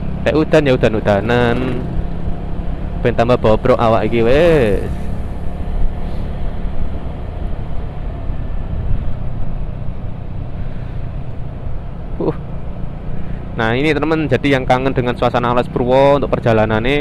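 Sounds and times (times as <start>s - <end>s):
motorcycle engine hum: 0.0s - 17.0s
road and wind noise: 0.0s - 17.0s.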